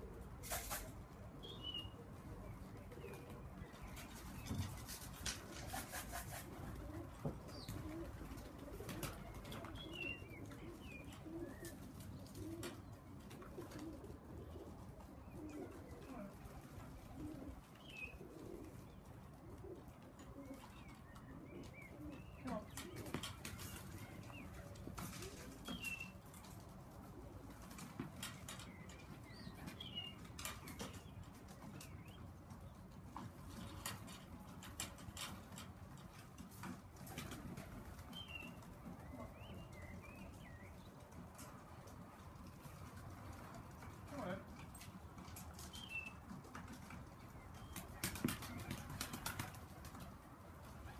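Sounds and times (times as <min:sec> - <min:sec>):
pigeons cooing: 0:00.0 - 0:31.9
wing flaps: 0:47.7 - 0:50.1.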